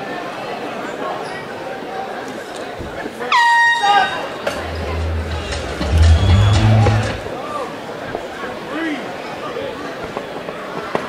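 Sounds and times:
air horn blast: 0:04.6 - 0:07.3
music with heavy bass beat: 0:04.6 - 0:07.3.

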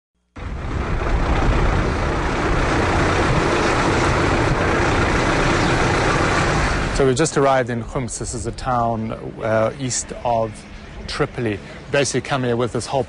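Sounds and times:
bus engine and road noise: 0:00.4 - 0:13.0.

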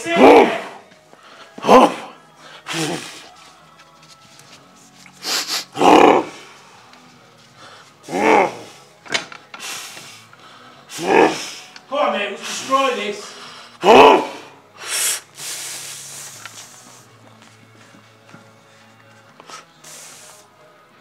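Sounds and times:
man roaring: 0:00.0 - 0:00.8, 0:01.6 - 0:03.1, 0:05.8 - 0:06.4, 0:08.1 - 0:08.8, 0:10.9 - 0:11.5, 0:13.8 - 0:14.6
hissing forced breaths: 0:00.5 - 0:03.5, 0:05.0 - 0:17.2, 0:18.8 - 0:20.6.

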